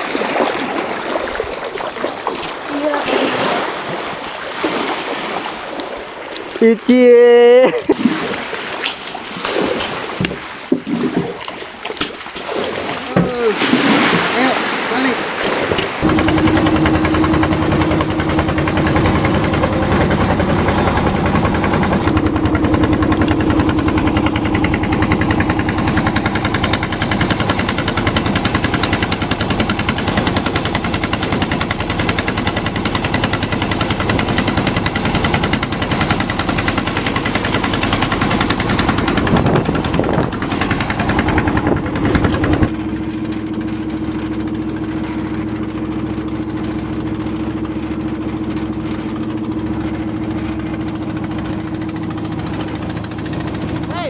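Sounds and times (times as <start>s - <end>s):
boat engine chugging: 0.0s - 54.0s.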